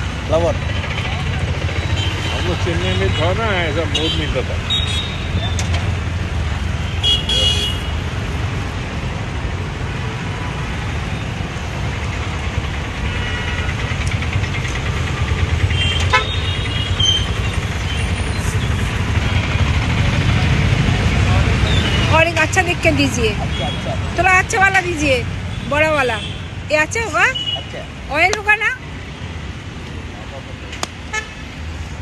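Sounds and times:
road traffic rumble: 0:00.0 - 0:32.0
vehicle horn toots: 0:06.9 - 0:08.0, 0:15.7 - 0:17.2.

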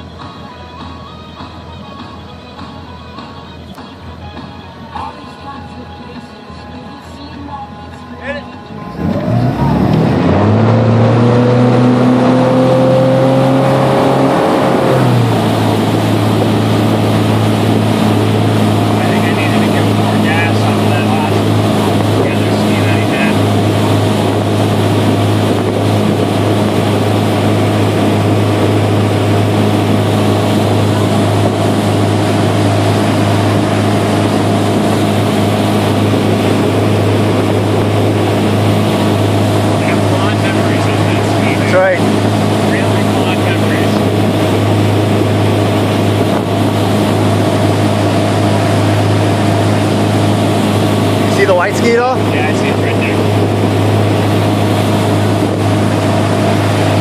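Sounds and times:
boat engine revving: 0:02.5 - 0:57.0
water rushing: 0:06.8 - 0:57.0
wind rushing: 0:08.8 - 0:57.0.

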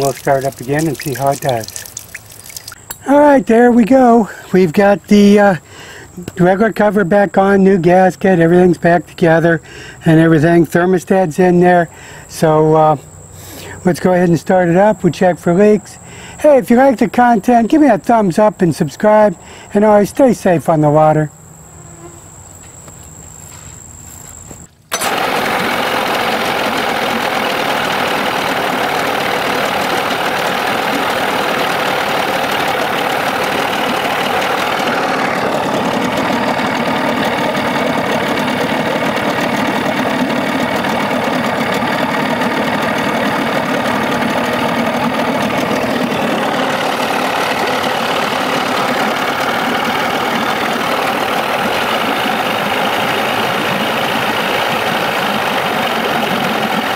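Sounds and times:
outboard motor running: 0:00.0 - 0:03.4, 0:24.9 - 0:56.9.

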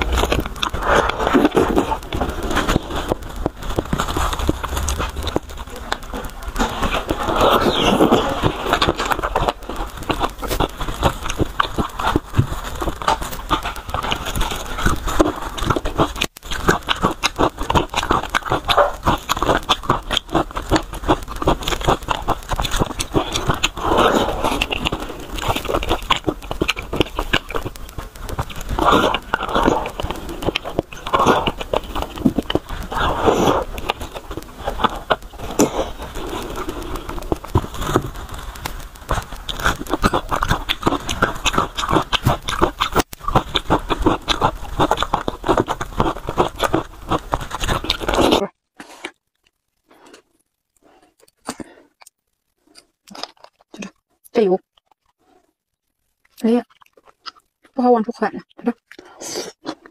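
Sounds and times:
wet chewing and sucking: 0:00.0 - 0:59.9.

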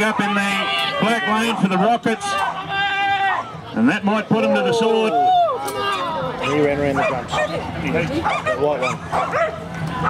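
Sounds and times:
dogs barking and yipping: 0:06.4 - 0:10.0.

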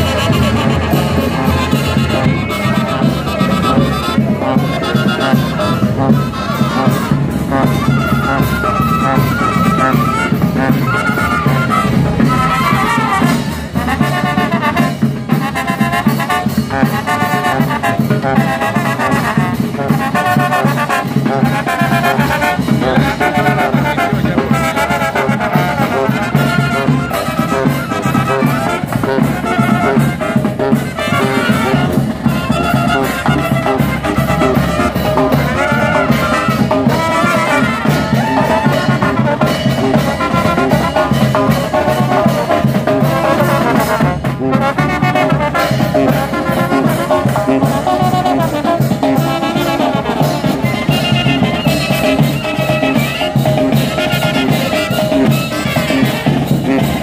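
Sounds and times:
bass drum and snare drum: 0:00.0 - 0:57.0
trumpets and trombones: 0:00.0 - 0:57.0.

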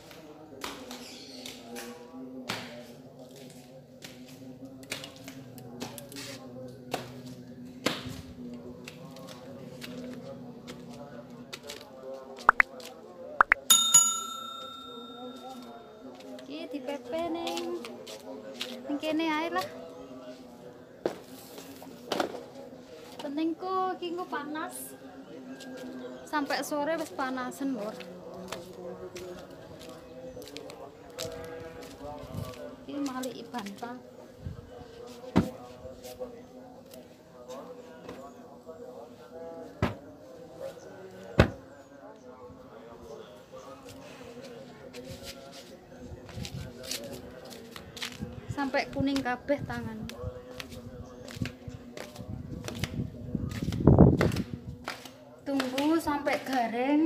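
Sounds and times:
faint background voices: 0:00.0 - 0:57.0
notification bell ding: 0:13.6 - 0:16.0.

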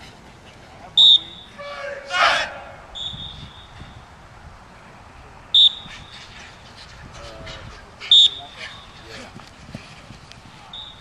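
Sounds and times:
faint open-air field noise: 0:00.0 - 0:11.0
shrill whistle blast: 0:01.0 - 0:01.9, 0:02.9 - 0:04.0, 0:05.5 - 0:06.0, 0:08.1 - 0:08.8, 0:10.7 - 0:11.0.

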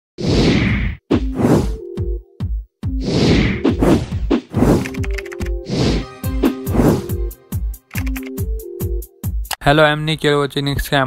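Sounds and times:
sharp whacks with pitched notes: 0:03.0 - 0:07.2
swoosh sound effect: 0:05.6 - 0:07.2.

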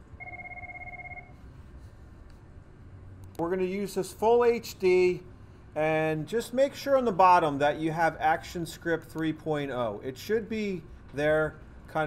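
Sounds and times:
electronic ringing tone: 0:00.0 - 0:01.4.

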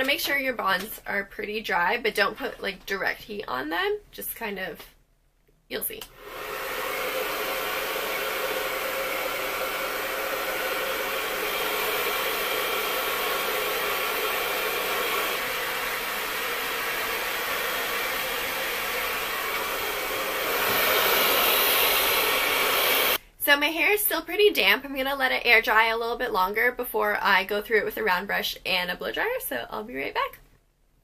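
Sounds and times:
hair dryer running: 0:06.1 - 0:23.2.

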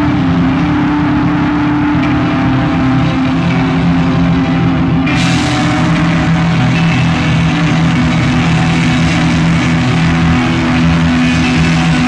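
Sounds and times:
distorted electric guitars and bass: 0:00.0 - 0:12.0.

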